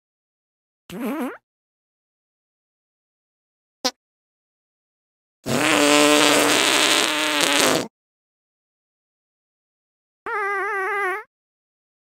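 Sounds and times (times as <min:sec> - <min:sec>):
long buzzing fart: 0:05.5 - 0:07.9.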